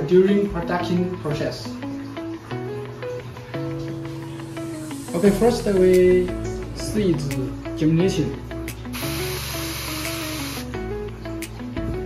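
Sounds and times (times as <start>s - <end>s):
background music: 0.0s - 12.0s
pressure sprayer hissing: 9.0s - 10.7s.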